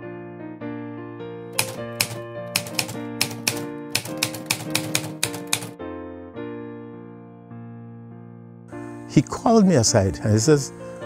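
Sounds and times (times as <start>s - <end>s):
soft piano music: 0.0s - 11.0s
typewriter keys clacking: 1.6s - 5.8s.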